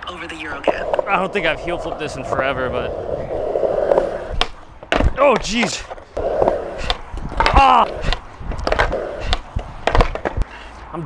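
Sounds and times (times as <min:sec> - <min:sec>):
skateboard wheels rolling: 0:00.0 - 0:10.6
skateboard knocks: 0:03.9 - 0:10.4
skater crying out: 0:05.6 - 0:08.2.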